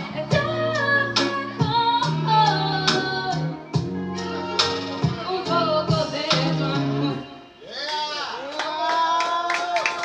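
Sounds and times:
backing music: 0.0 - 7.7
person singing: 4.2 - 7.4.

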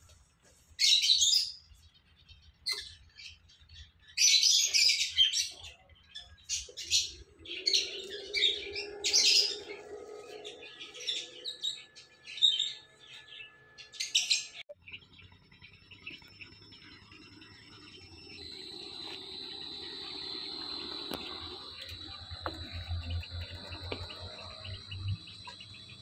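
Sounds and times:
birds chirping: 0.0 - 26.0
faint steady hum: 5.9 - 26.0.

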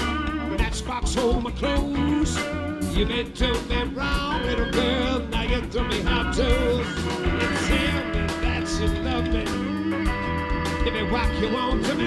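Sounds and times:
drums: 0.0 - 12.0
electric bass: 0.0 - 12.0
electric guitar with bent notes: 0.0 - 12.0
organ chords: 0.0 - 12.0.

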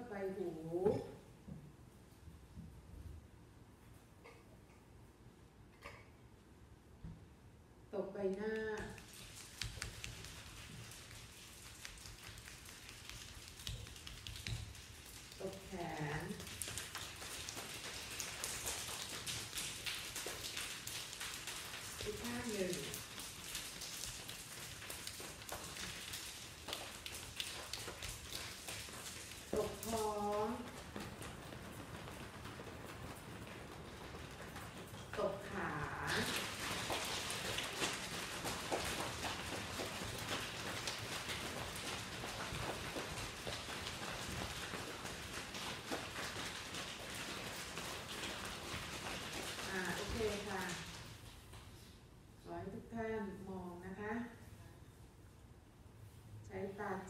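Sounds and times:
people slapping thighs: 8.3 - 51.9
hands rubbing skin and cloth: 8.8 - 52.0.

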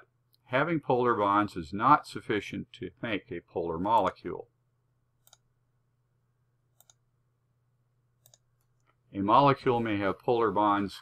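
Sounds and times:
computer mouse clicks: 5.2 - 5.5, 6.7 - 7.0, 8.2 - 8.9.

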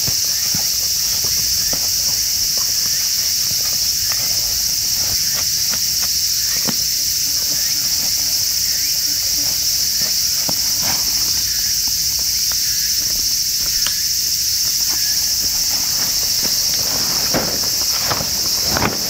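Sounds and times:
canvas tarp unfolding: 0.0 - 12.8, 14.6 - 19.0
camping gear clicks and rustles: 0.0 - 19.0
high-pitched insect chorus: 0.0 - 19.0.

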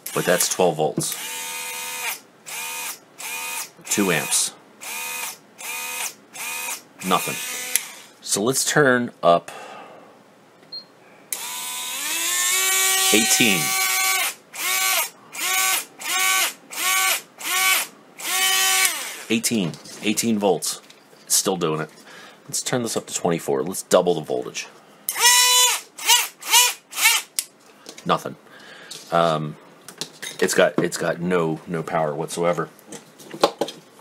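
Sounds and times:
rotary tool motor whining: 0.1 - 8.1, 11.4 - 19.3, 25.1 - 27.3.

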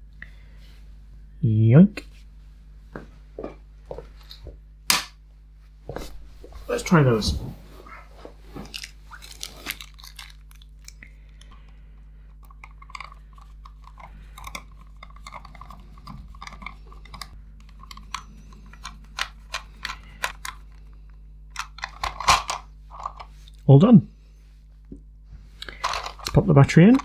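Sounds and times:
plastic parts clicking and tapping: 8.7 - 20.9, 21.5 - 23.3, 25.6 - 27.0.

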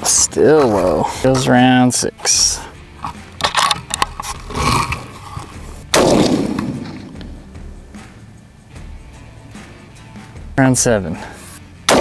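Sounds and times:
rifle handling clicks: 3.0 - 5.5
rifle shot with echo: 5.9 - 7.4.

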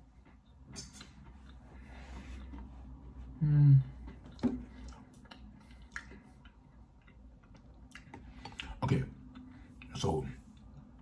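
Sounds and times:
man chewing a cookie: 0.0 - 11.0.

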